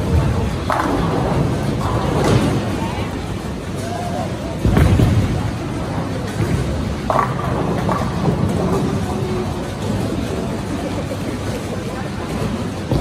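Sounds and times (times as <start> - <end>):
bowling balls rolling: 0.0 - 13.0
faint voices: 0.0 - 13.0.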